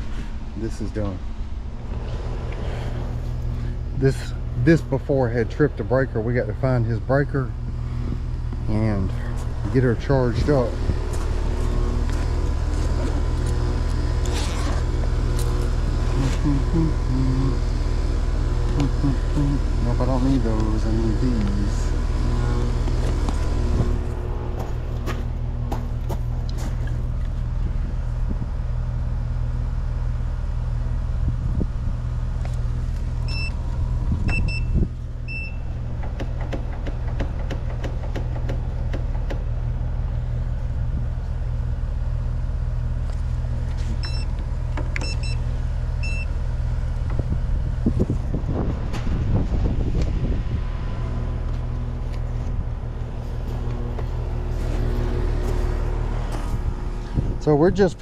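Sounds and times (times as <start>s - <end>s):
air conditioner humming: 0.0s - 58.0s.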